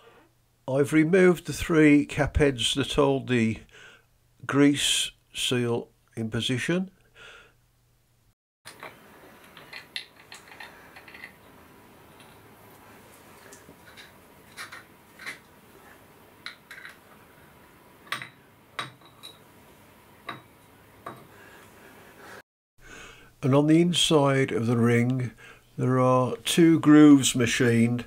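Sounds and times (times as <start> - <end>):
metal parts clicking and clinking: 8.7 - 11.4, 16.4 - 17.0.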